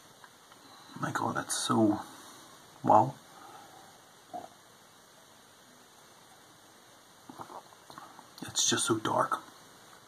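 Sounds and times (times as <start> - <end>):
man slurping a drink: 7.3 - 8.0.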